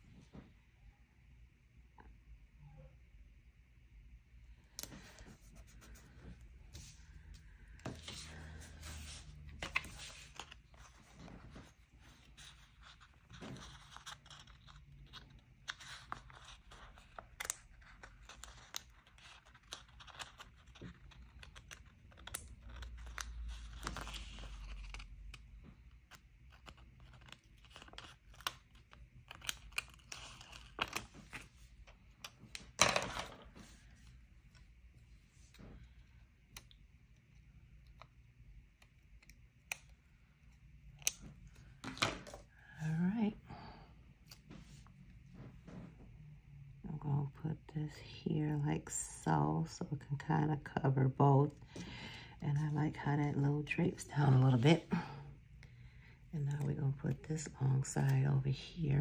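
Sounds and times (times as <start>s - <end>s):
paper rustling and crinkling: 4.8s - 34.1s
paper crackle: 7.8s - 32.6s.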